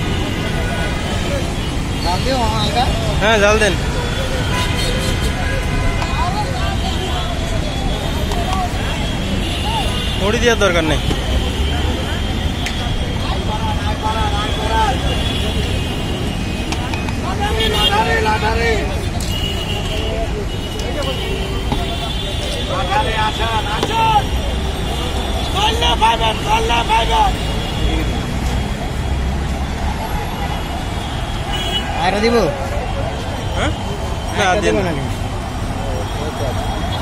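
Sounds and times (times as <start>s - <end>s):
people talking: 0.0s - 29.0s, 32.0s - 37.0s
low rumble of street traffic: 0.0s - 37.0s
outdoor hubbub: 0.0s - 37.0s.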